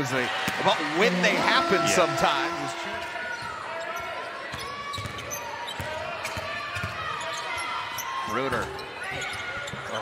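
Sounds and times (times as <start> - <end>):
murmur of crowd: 0.0 - 10.0.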